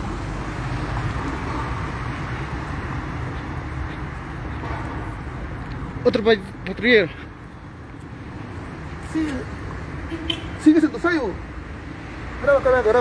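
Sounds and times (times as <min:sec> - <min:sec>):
traffic rumble: 0:00.0 - 0:13.0.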